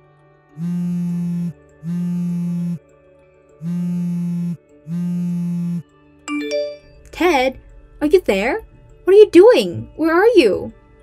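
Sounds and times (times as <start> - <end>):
buzzy phone ringtone: 0.6 - 2.8, 3.6 - 5.8.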